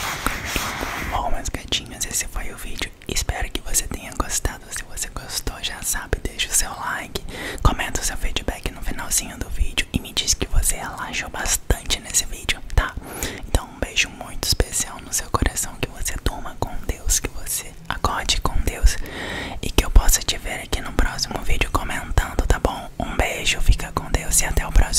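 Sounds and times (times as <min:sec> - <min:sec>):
soft whispering: 0:00.0 - 0:24.9.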